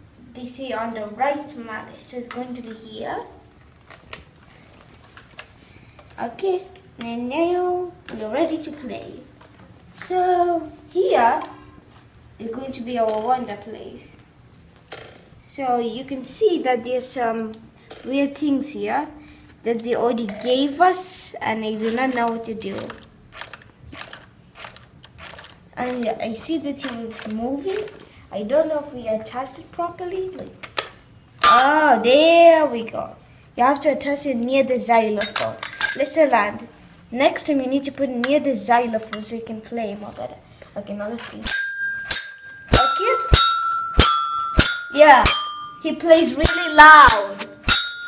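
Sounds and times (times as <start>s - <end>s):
toy xylophone strikes: 31.4s - 32.2s, 35.2s - 36.3s, 41.4s - 48.0s.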